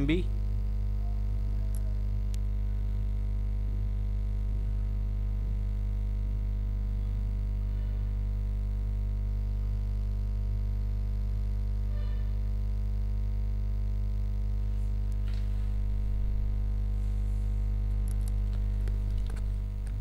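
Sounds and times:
electrical hum: 0.0s - 20.0s.

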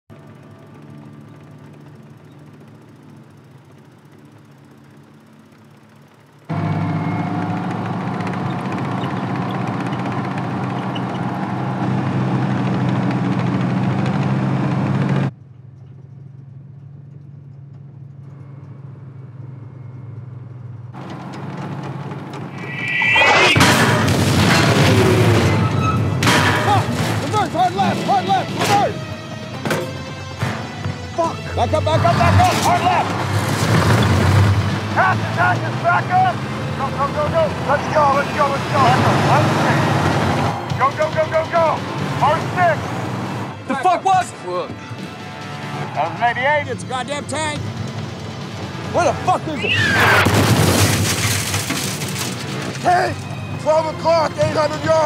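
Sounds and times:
tank engines rumbling: 0.1s - 55.0s
sharp cracks and impacts: 21.0s - 27.6s, 50.0s - 52.9s
loud explosion: 22.6s - 25.8s.

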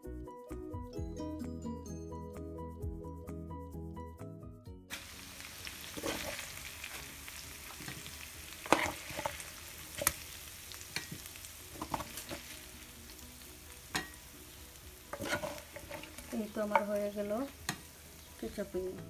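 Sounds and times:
chicken wings sizzling in oil: 4.9s - 19.0s
metal spoon clinking on pan: 10.9s - 11.2s, 13.9s - 14.2s, 15.1s - 17.0s.

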